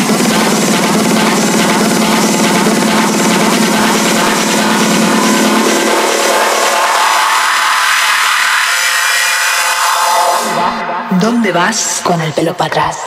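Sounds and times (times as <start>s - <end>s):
techno track: 0.0s - 13.0s.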